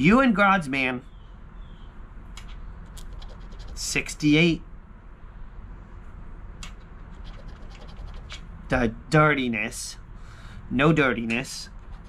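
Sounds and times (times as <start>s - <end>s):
low background hum: 0.0s - 12.0s
coin scraping a scratch card: 2.4s - 4.0s, 6.8s - 8.4s.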